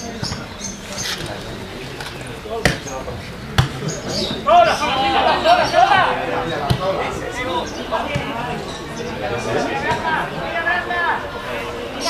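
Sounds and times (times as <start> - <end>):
football being kicked: 3.6 - 3.8, 6.6 - 7.0
men shouting: 4.4 - 8.5.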